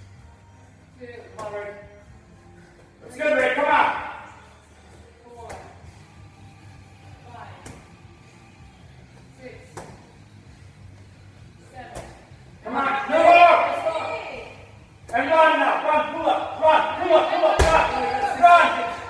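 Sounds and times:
man shouting encouragement: 12.6 - 14.3, 15.1 - 19.0
medicine ball thudding on wall: 17.6 - 18.0.

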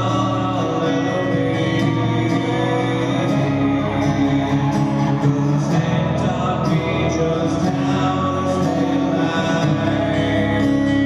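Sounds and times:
lap slide guitar sustained notes: 0.0 - 11.0
strummed acoustic guitar: 0.0 - 11.0.

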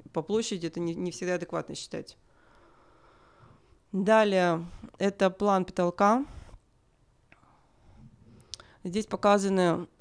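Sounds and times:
woman speaking: 0.0 - 2.2, 3.9 - 6.4, 8.8 - 10.0
faint breathy noise: 2.2 - 3.9, 6.2 - 6.7, 7.3 - 8.9.

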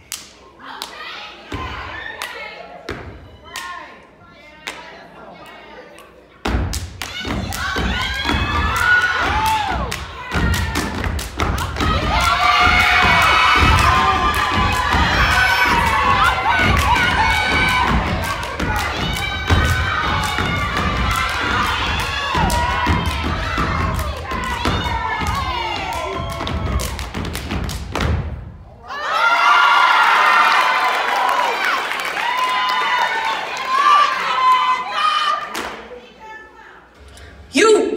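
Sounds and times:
crowd cheering and shouting: 0.5 - 4.0, 7.1 - 27.4, 28.7 - 35.6
stomping and clapping on wooden stage: 6.4 - 34.8, 35.4 - 36.0.

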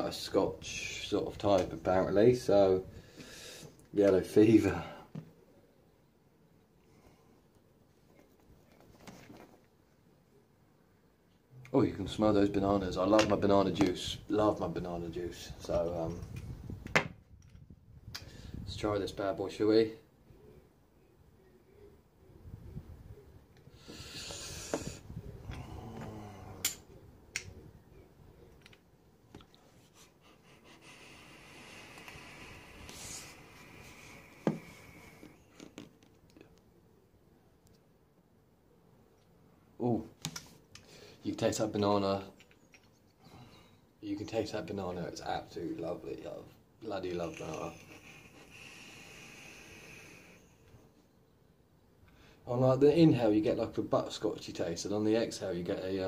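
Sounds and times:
hiss of air drawn through: 23.8 - 25.2, 30.5 - 35.4, 47.7 - 50.6.

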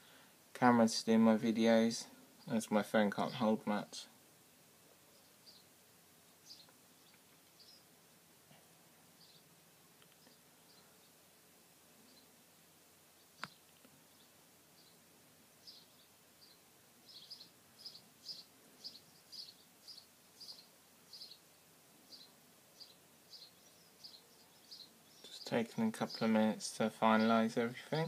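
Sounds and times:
faint high bird chirps: 5.1 - 7.9, 9.2 - 9.5, 15.6 - 21.5, 22.1 - 26.3.

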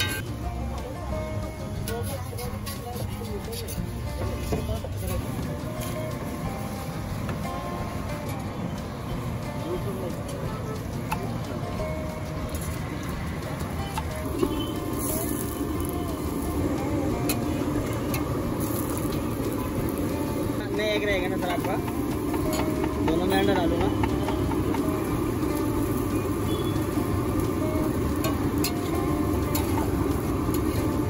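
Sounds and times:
background music: 0.0 - 31.0
traffic: 0.0 - 31.0
spatula and tongs clicking on metal: 13.4 - 26.0, 27.1 - 31.0.

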